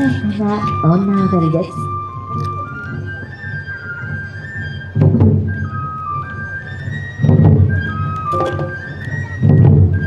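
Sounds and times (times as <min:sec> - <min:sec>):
bamboo flute melody: 0:00.0 - 0:10.0
heavy drum stroke: 0:08.3 - 0:09.6.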